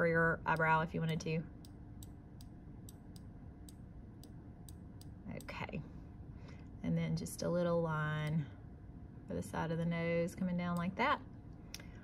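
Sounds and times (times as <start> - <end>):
computer mouse clicking: 0.5 - 5.5.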